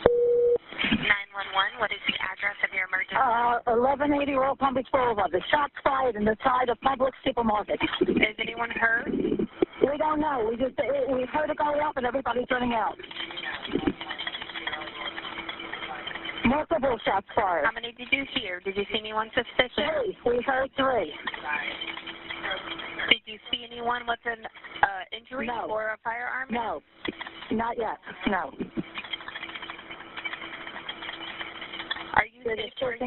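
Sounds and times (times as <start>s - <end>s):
telephone line hum: 0.0s - 0.6s
faint steady hum: 0.0s - 33.0s.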